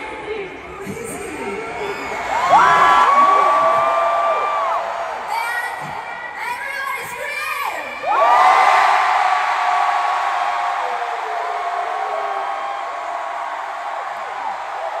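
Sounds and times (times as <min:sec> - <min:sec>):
stadium crowd cheering and screaming: 0:00.0 - 0:06.5, 0:07.8 - 0:15.0.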